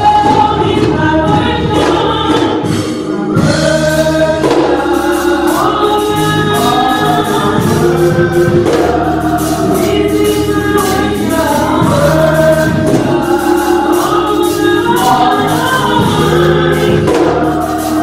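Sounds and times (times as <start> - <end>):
percussion: 0.0 - 18.0
women singing gospel in harmony: 0.0 - 18.0.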